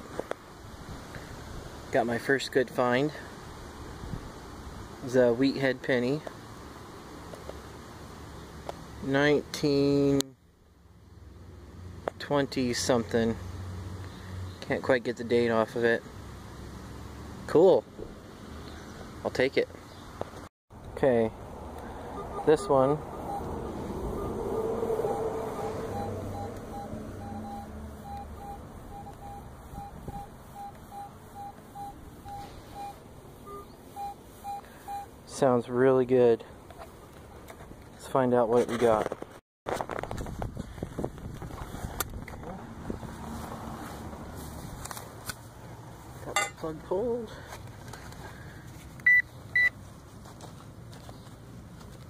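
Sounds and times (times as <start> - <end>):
metal detector beeps: 22.1 - 23.5, 25.0 - 35.1, 49.0 - 49.8.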